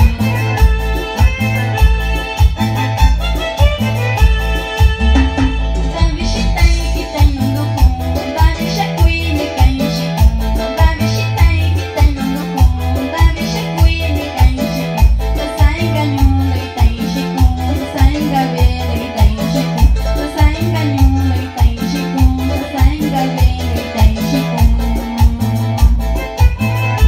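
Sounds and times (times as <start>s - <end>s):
live band with keyboards: 0.0s - 27.0s
pulsing bass beat: 0.0s - 27.0s
woman singing: 5.8s - 27.0s.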